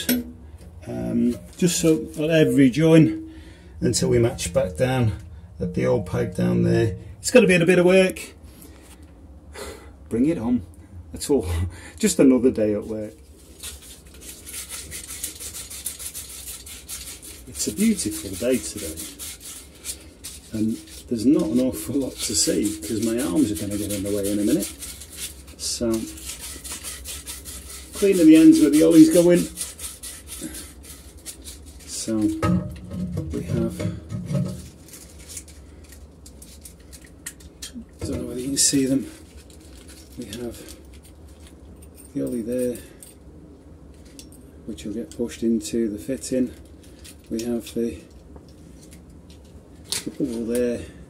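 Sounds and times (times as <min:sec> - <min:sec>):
abrasive paper scraping metal pipe: 0:00.0 - 0:08.4, 0:12.1 - 0:41.6, 0:46.0 - 0:51.0.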